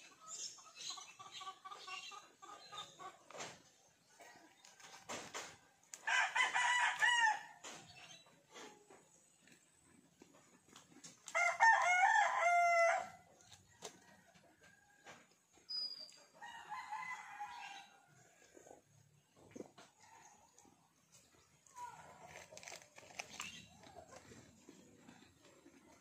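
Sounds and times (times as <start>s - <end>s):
rooster crowing: 6.0s - 7.5s, 11.4s - 13.2s, 16.4s - 17.9s.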